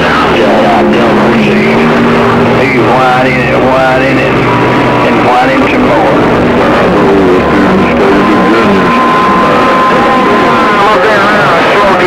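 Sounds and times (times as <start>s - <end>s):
garbled radio voices: 0.0s - 12.0s
steady low tone: 0.0s - 12.0s.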